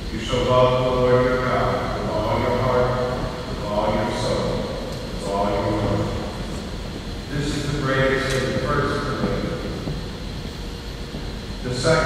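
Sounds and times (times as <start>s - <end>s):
man chanting in monotone: 0.0s - 6.6s, 7.3s - 9.8s, 11.6s - 12.0s.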